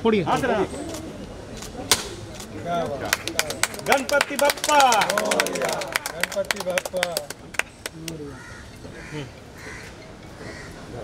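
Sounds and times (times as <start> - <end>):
birds calling: 7.5 - 11.0.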